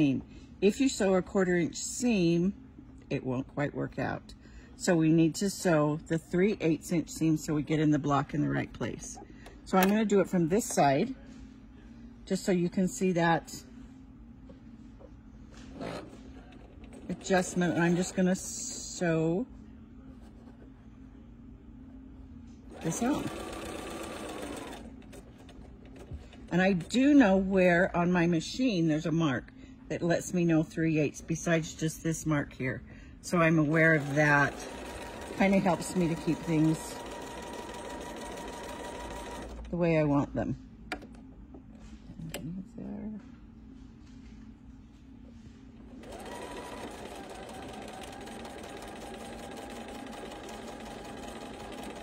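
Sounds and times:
sewing machine stitching: 0:15.7 - 0:18.5, 0:22.7 - 0:26.9, 0:33.6 - 0:39.7, 0:46.0 - 0:52.0
sewing machine clicks: 0:22.8 - 0:24.9, 0:34.0 - 0:39.6, 0:46.0 - 0:52.0.

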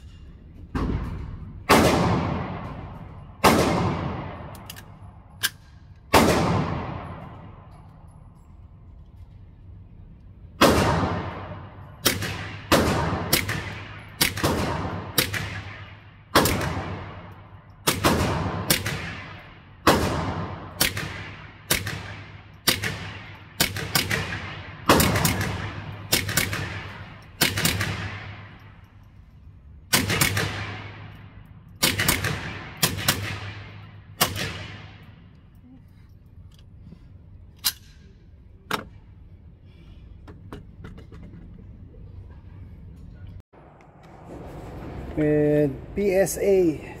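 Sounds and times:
rifle shots echoing indoors: 0:00.0 - 0:35.6.

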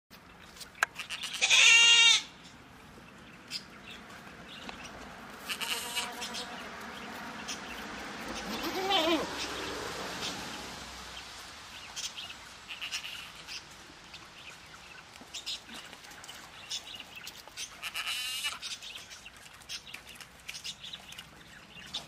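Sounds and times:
goats bleating: 0:01.0 - 0:02.3, 0:05.4 - 0:06.6, 0:08.4 - 0:09.3, 0:17.8 - 0:18.6.

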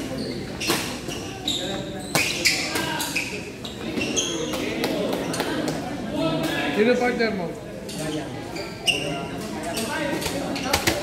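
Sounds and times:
shoes squeaking on gym floor: 0:00.0 - 0:04.7, 0:07.9 - 0:10.7
spectators chattering: 0:00.0 - 0:11.0.

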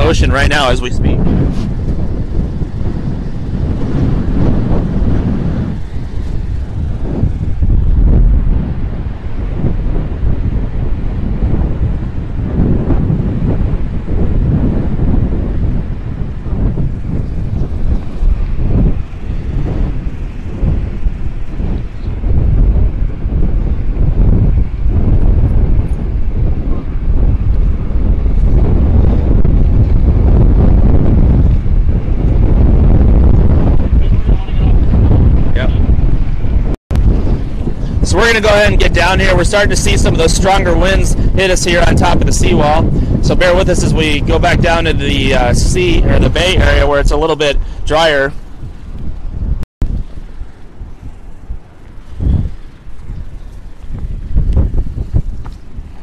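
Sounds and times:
gusty wind buffeting microphone: 0:00.0 - 0:56.0
heavy surf breaking: 0:00.0 - 0:56.0.

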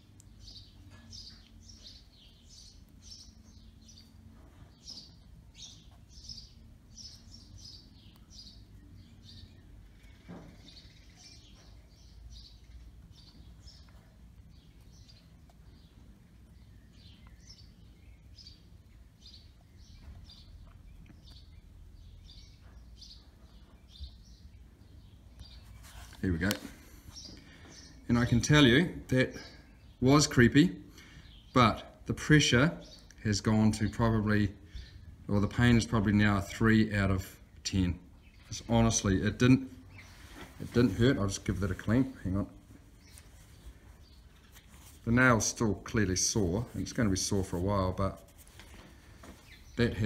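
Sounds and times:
faint birds chirping: 0:00.0 - 0:50.0.

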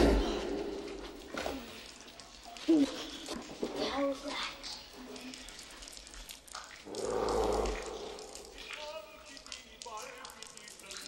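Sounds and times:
loud growling roar: 0:06.9 - 0:08.4.

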